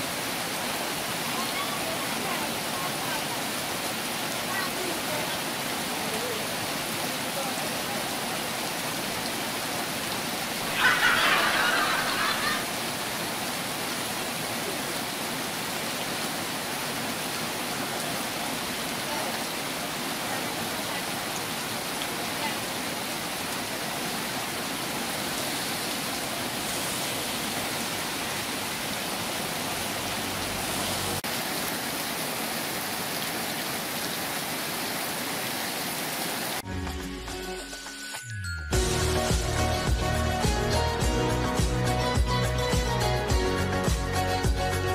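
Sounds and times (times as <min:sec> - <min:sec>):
heavy rain pouring: 0:00.0 - 0:36.8
music jingle: 0:36.6 - 0:42.1.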